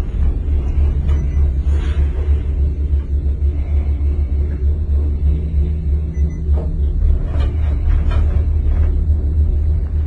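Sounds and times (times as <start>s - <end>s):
faint steady hum: 0.0s - 10.0s
gondola cabin rumble: 0.0s - 10.0s.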